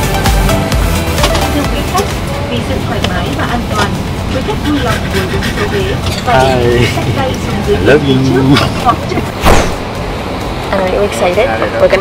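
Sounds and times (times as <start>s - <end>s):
low rumble of engines and air: 0.0s - 12.0s
faint voices talking: 1.2s - 9.5s.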